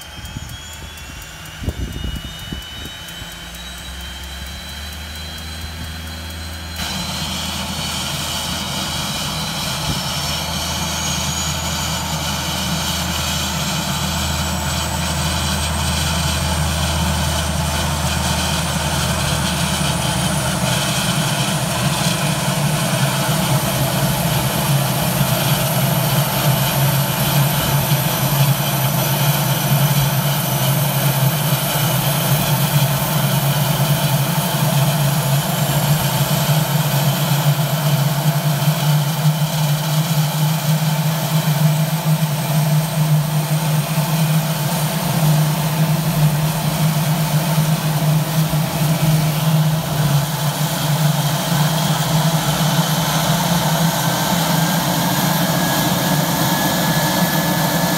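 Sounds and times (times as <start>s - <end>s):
propeller drone: 0.0s - 57.9s
turbine whine: 0.0s - 57.9s.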